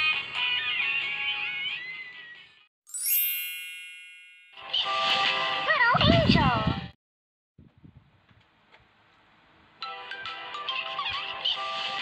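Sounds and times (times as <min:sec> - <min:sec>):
children's song from a phone: 0:00.0 - 0:02.5
bright chime ding: 0:02.9 - 0:04.6
bright music with wavering melody: 0:02.9 - 0:05.7, 0:09.8 - 0:12.0.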